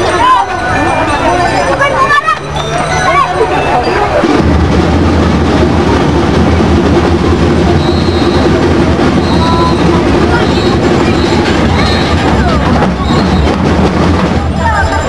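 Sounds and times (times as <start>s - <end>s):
marching bass and snare drums: 4.1s - 15.0s.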